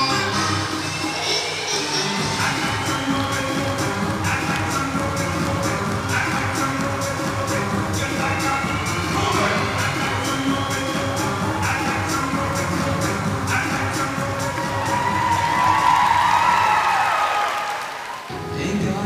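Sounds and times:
pop dance music: 0.0s - 17.6s, 18.3s - 19.0s.

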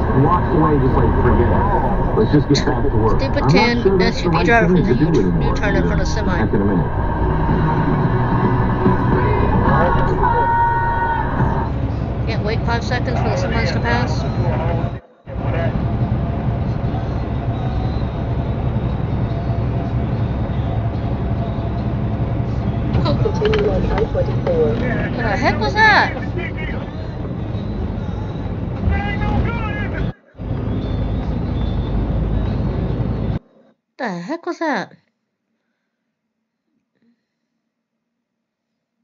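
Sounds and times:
person speaking: 0.0s - 7.1s
truck road and engine noise: 0.0s - 33.4s.

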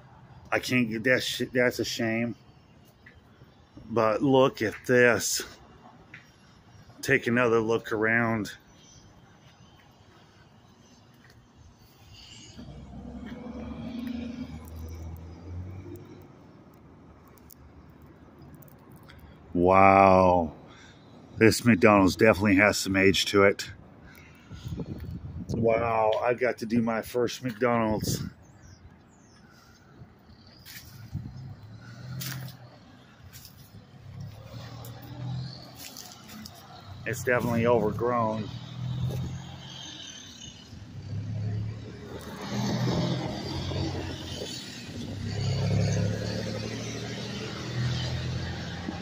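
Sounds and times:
faint road traffic rumble: 0.0s - 49.0s
vehicle engine passing: 12.2s - 16.5s, 30.4s - 49.0s.

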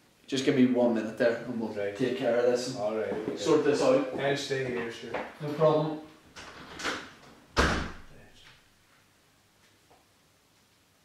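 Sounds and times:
door slamming shut: 6.5s - 8.2s.

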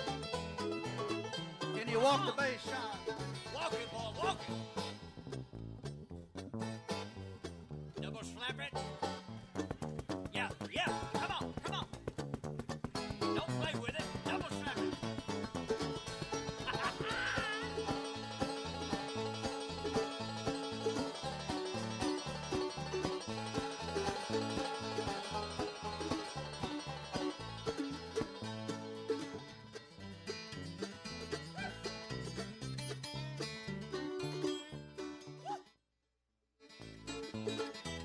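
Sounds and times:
upright bass walking line: 0.0s - 34.6s
banjo picking: 0.0s - 35.6s, 36.7s - 38.0s.

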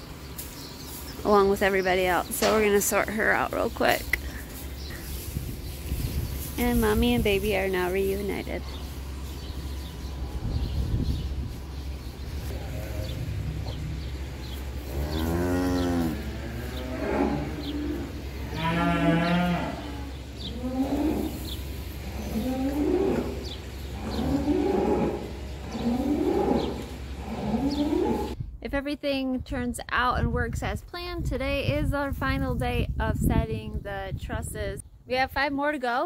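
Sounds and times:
cattle mooing: 12.4s - 14.2s, 14.8s - 28.4s.

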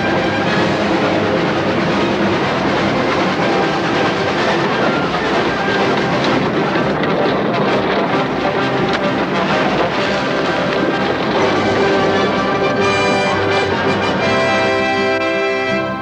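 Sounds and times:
background music: 0.0s - 16.0s
cartoon steam train clattering: 0.0s - 16.0s.

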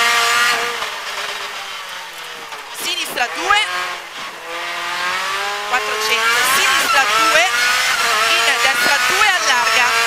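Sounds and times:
car engine downshifting: 0.0s - 10.0s.

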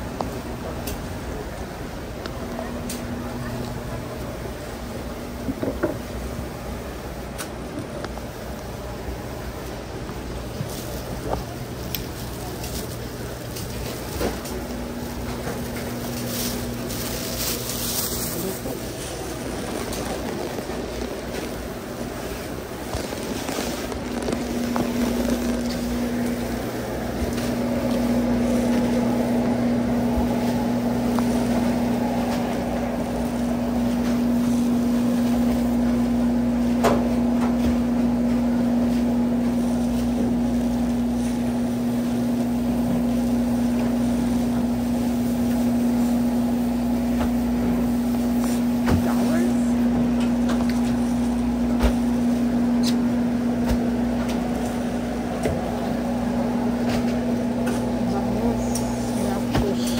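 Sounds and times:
electrical machinery hum: 0.0s - 59.9s.

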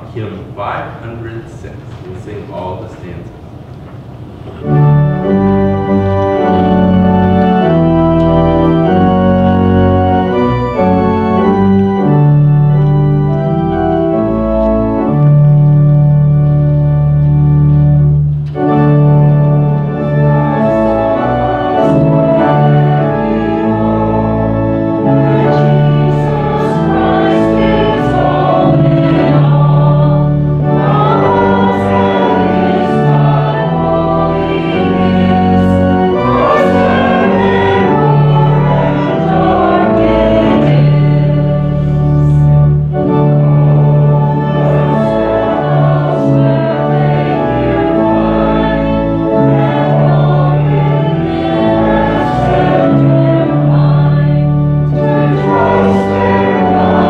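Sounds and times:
church organ playing a hymn: 0.0s - 57.0s.

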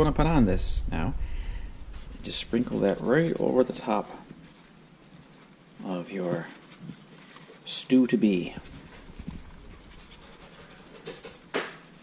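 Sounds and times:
paper packet rustling: 1.8s - 12.0s.

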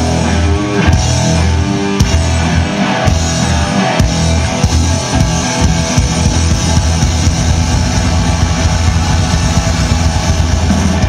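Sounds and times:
punk rock band playing live: 0.0s - 11.0s.

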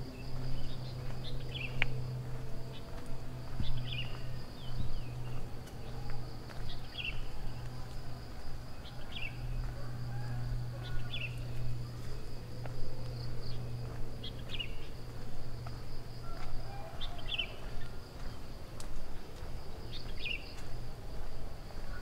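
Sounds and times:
high insect drone: 0.0s - 22.0s
low steady hum: 0.0s - 22.0s.

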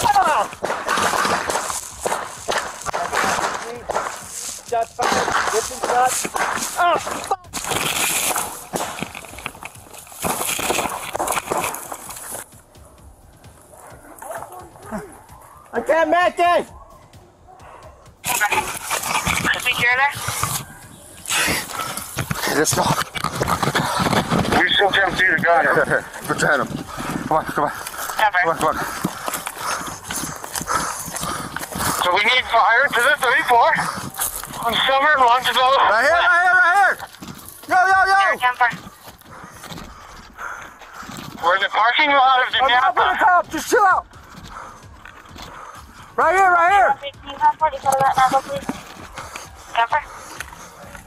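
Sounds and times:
microphone rubbing against clothing: 17.6s - 36.0s.

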